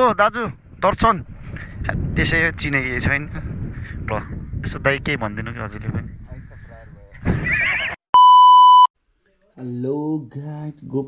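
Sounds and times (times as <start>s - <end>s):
horse whinnying: 7.5s - 8.0s
high-pitched beep: 8.2s - 8.9s.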